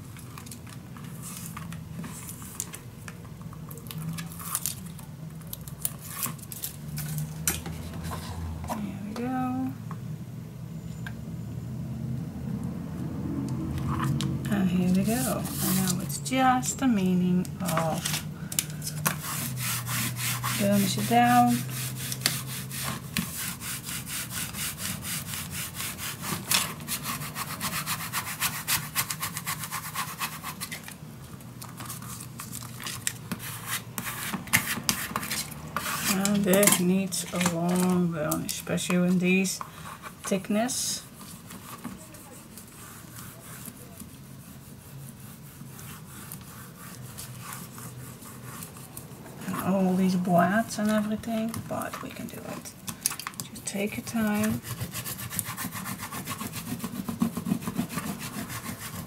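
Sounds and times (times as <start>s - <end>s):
tape and paper handling: 0.1s - 8.9s, 13.8s - 16.2s, 17.3s - 44.3s
pad rubbing over cardstock: 14.8s - 16.1s, 19.0s - 30.8s, 40.9s - 49.9s, 54.0s - 59.0s.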